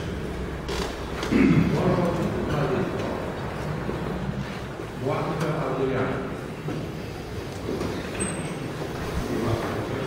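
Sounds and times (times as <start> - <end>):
murmur of many people talking: 0.0 - 10.0.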